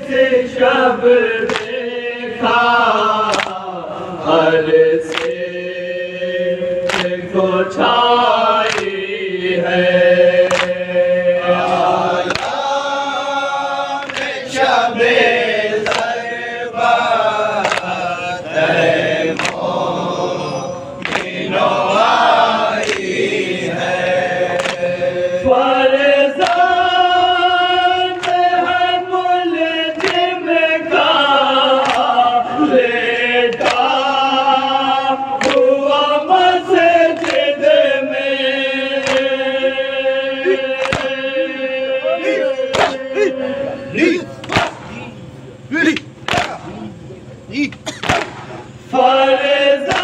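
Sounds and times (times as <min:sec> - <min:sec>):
men chanting in unison: 0:00.0 - 0:50.0
chest-beating slaps: 0:40.8 - 0:41.2, 0:42.7 - 0:43.0, 0:44.4 - 0:45.1, 0:45.8 - 0:46.8, 0:47.7 - 0:48.8.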